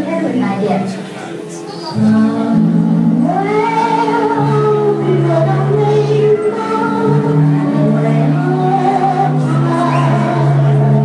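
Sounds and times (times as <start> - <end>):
choir singing long held notes: 1.2 - 11.0.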